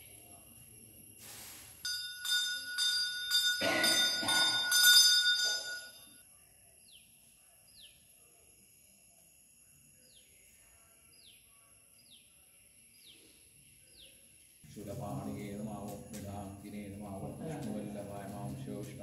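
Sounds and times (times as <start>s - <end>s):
brass bell ringing: 1.8s - 6.1s
faint bird chirps: 6.2s - 14.6s.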